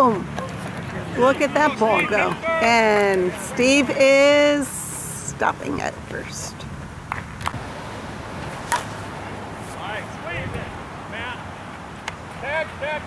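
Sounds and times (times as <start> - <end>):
distant players shouting: 0.0 - 6.6, 7.6 - 13.0.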